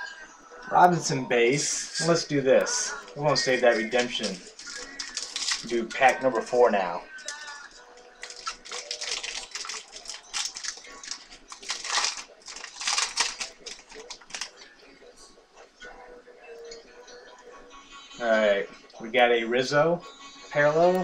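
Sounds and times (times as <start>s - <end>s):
card pack crinkling and tearing: 2.7s - 6.5s, 8.2s - 14.6s.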